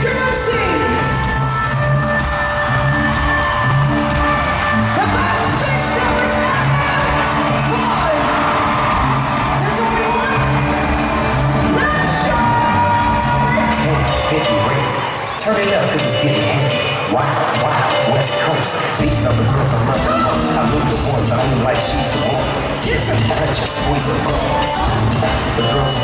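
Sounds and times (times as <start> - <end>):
pop music over sound system: 0.0 - 26.0.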